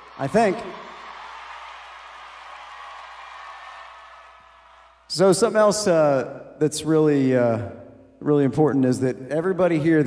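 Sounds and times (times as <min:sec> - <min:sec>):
faint applause: 0:00.0 - 0:05.1.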